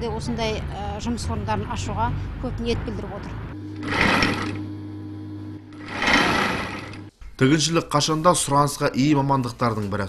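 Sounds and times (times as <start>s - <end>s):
steady hum: 3.4s - 7.2s
electric sewing machine running: 3.8s - 4.7s, 5.6s - 7.1s.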